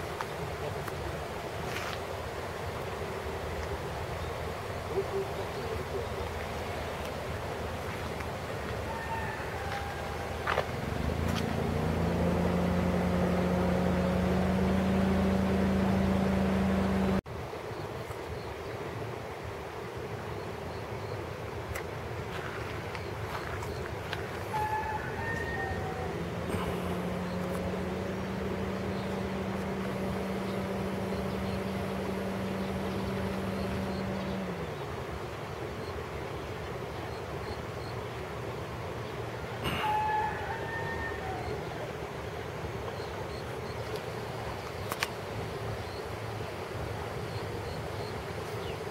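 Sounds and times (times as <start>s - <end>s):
rushing background noise: 0.0s - 40.2s
vehicle engine hum: 2.2s - 17.3s, 23.0s - 36.8s.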